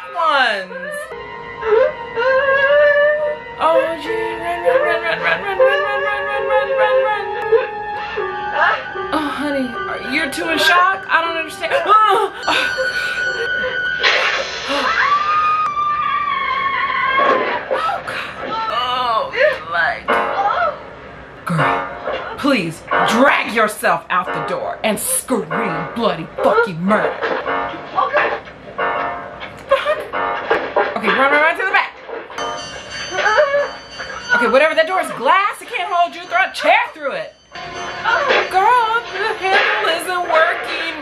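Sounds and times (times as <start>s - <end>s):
steady high held tones: 0.0s - 17.8s, 18.4s - 41.0s
tense film music: 0.0s - 41.0s
woman whimpering: 1.7s - 7.8s, 33.1s - 34.6s
long high scream: 14.6s - 17.4s.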